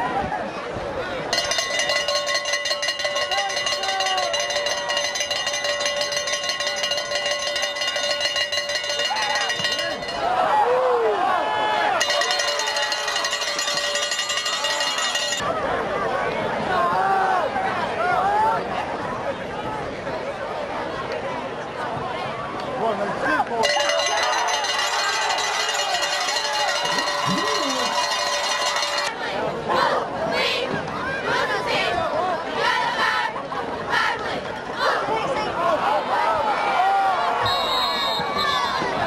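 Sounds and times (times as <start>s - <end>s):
cowbell clanging: 1.3s - 10.3s, 12.0s - 15.4s, 23.6s - 29.1s
spectators shouting: 3.0s - 5.2s, 9.0s - 13.8s, 23.6s - 39.0s.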